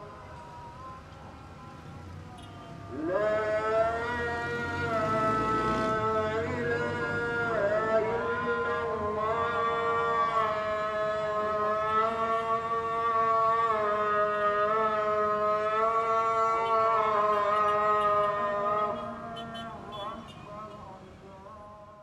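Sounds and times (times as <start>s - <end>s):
call to prayer chanted: 0.0s - 22.0s
street traffic hum: 0.0s - 22.0s.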